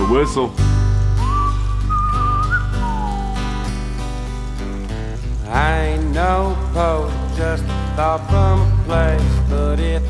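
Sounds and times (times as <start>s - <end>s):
whistled melody: 0.0s - 4.2s
bass: 0.0s - 10.0s
strummed acoustic guitar: 0.0s - 10.0s
man singing: 5.4s - 10.0s.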